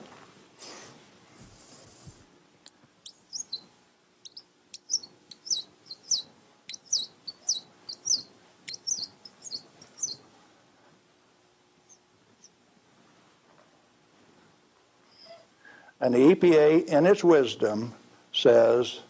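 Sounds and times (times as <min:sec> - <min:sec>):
marker squeaking on whiteboard: 0:03.1 - 0:03.7, 0:04.3 - 0:10.2.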